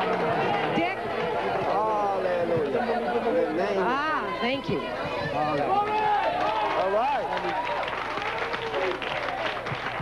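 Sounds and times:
people praying aloud: 0:00.0 - 0:07.6.

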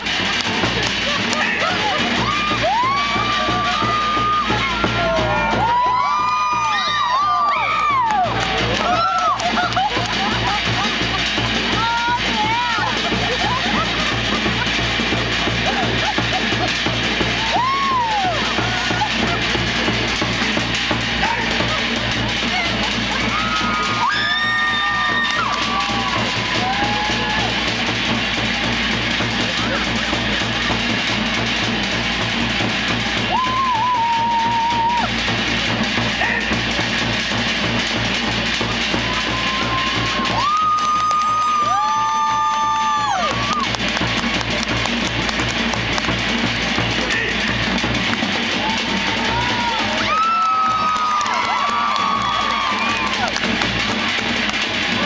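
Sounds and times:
fast steady drumming: 0:00.0 - 0:55.0.

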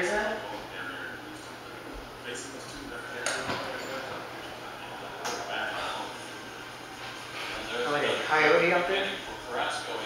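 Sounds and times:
faint indistinct voices: 0:00.0 - 0:10.0
room noise: 0:00.0 - 0:10.0.

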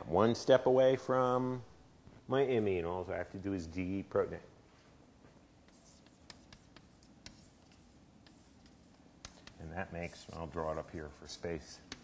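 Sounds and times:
chalk tapping on blackboard: 0:05.6 - 0:10.9, 0:11.6 - 0:12.0.

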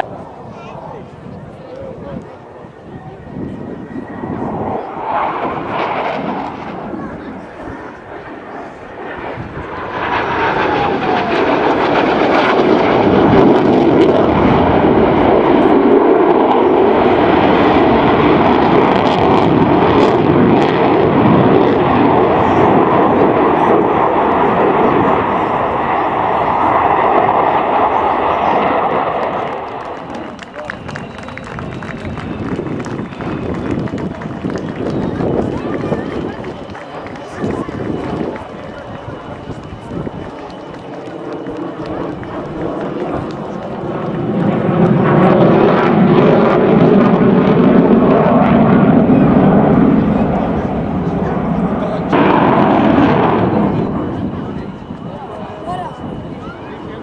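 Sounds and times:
falling jet whine: 0:00.0 - 0:57.0
jet engine roar: 0:00.0 - 0:57.0.

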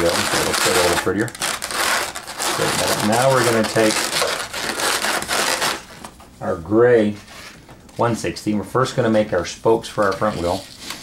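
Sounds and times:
balloons rubbing and rustling: 0:00.0 - 0:07.7.

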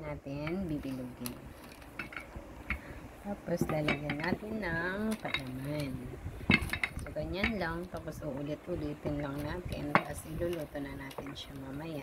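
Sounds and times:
woman talking: 0:00.0 - 0:01.6, 0:03.2 - 0:06.2, 0:07.0 - 0:12.0.

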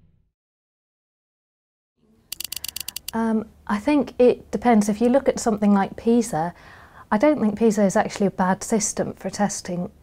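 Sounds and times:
rapid sharp clicks: 0:02.3 - 0:03.2.

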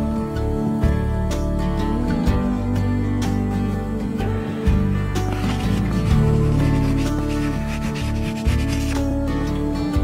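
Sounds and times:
background music sustained tones: 0:00.0 - 0:10.0
pen scratching on paper: 0:05.2 - 0:09.1.

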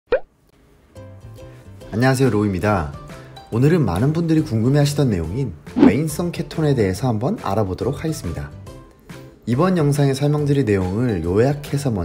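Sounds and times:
rising plop sound effect: 0:00.1 - 0:00.3, 0:05.8 - 0:06.0
soft intro music: 0:05.0 - 0:06.6.

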